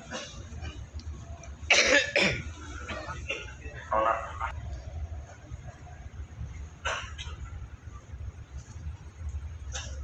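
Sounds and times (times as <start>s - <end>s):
air-conditioning blowers humming: 0.0s - 10.0s
person coughing: 1.7s - 3.6s.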